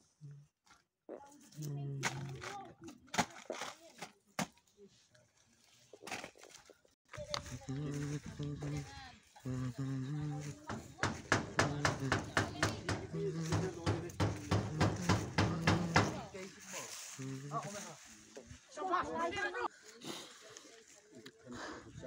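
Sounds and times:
short rhythmic vocal bursts: 9.4 - 10.6.

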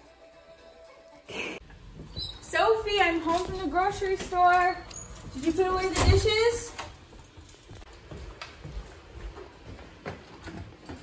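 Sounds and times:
footsteps on hard floor: 3.2 - 11.0.

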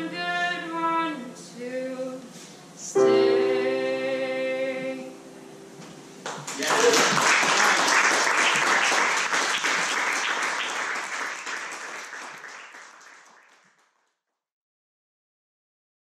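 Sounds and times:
audience clapping: 6.2 - 14.2.

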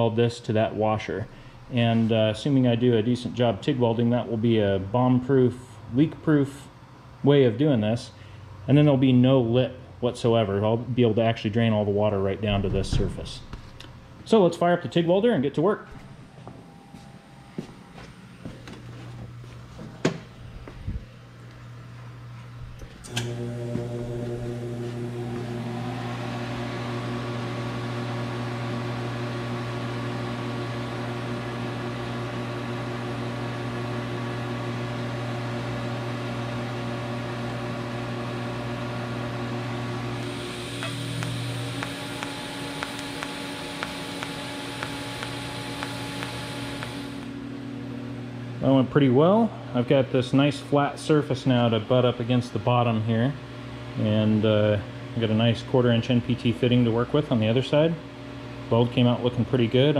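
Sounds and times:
cooling fan and electrical hum: 0.0 - 59.9
welder switch click: 40.2 - 47.3.

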